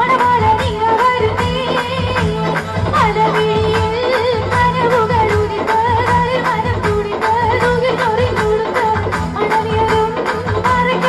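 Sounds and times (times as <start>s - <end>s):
steady drum beat: 0.0s - 11.0s
woman singing into a microphone: 0.0s - 11.0s.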